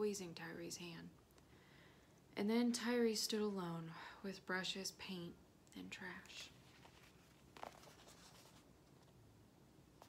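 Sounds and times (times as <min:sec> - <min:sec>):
book pages rustling: 0:06.2 - 0:09.2.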